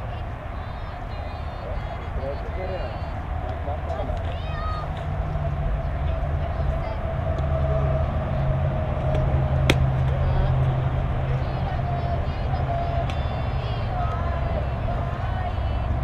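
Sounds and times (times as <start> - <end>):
steady low drone: 0.0 - 16.0
bat cracking a ball: 9.0 - 10.5.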